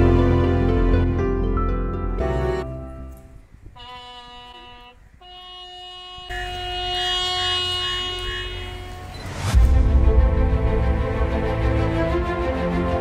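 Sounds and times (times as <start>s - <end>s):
bugle call with long notes: 3.8s - 9.5s.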